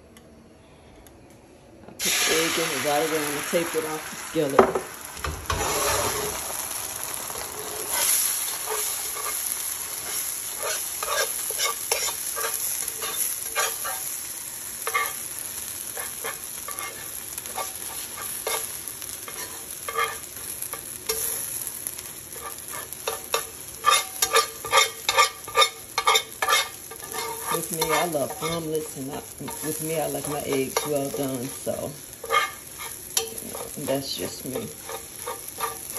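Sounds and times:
eggs sizzling in skillet: 2.0 - 35.9
whisk tapping and scraping pan: 10.0 - 14.0, 22.4 - 35.9.

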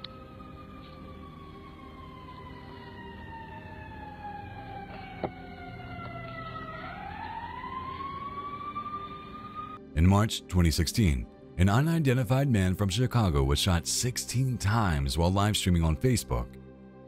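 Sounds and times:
emergency siren wailing: 0.0 - 9.8.

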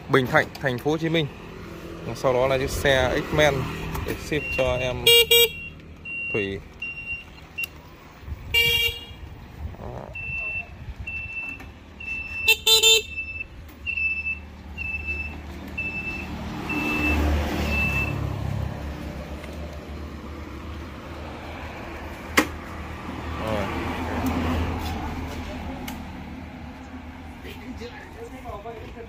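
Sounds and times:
scooter horn toots: 4.5 - 7.3, 8.4 - 9.3, 10.2 - 18.1.

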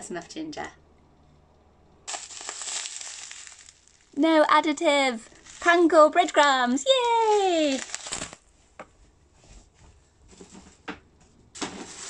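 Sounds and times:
plastic bag crinkling: 2.1 - 4.2, 4.9 - 8.5.

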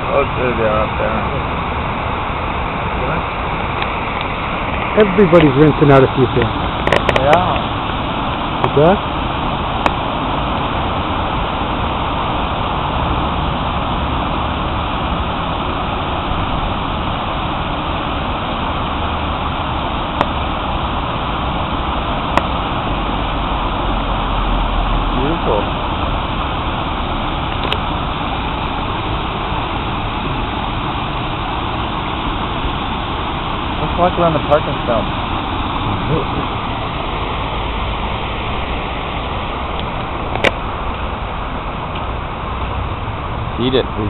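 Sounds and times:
water pouring over fountain ledges: 0.0 - 44.0.

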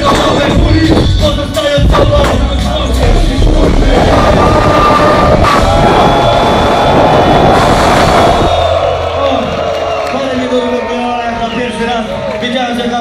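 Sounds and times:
crowd noise: 0.0 - 13.0
live hip hop music: 0.0 - 13.0.

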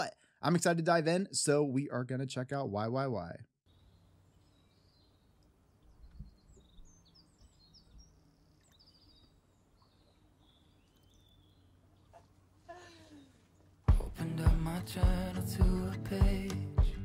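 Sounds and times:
high bird chirps: 3.7 - 12.3.

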